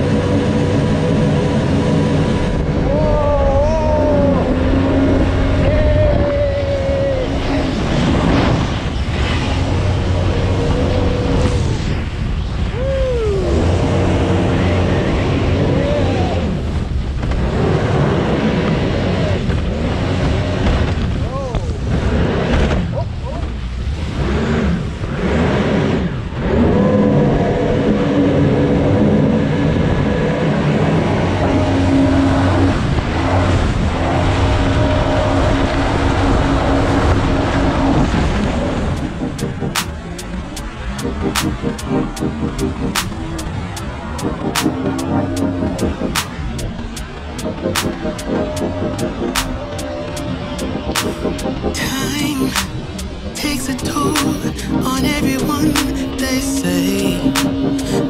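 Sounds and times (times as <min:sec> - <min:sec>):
boat engine roaring: 0:00.0 - 0:58.0
water rushing against hull: 0:00.0 - 0:58.0.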